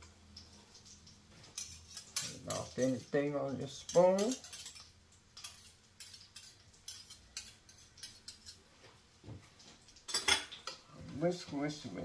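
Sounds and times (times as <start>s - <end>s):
metal spoon scraping a bowl: 1.6s - 3.1s, 3.8s - 8.6s.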